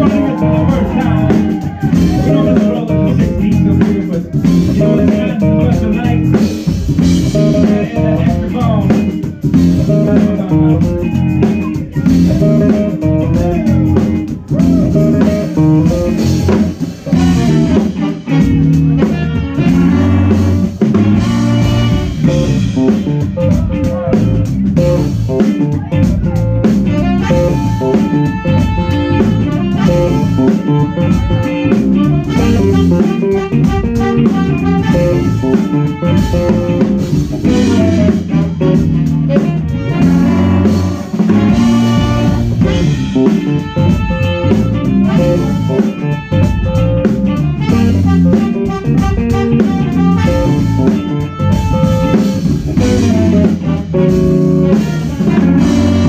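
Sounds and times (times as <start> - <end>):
funk band playing: 0.0 - 56.0
steady held notes: 0.0 - 56.0.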